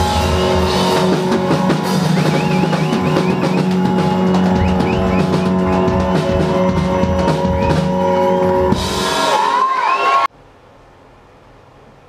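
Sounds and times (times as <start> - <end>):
guitar: 0.0 - 10.2
band playing loudly: 0.0 - 10.3
drum kit: 0.0 - 10.3.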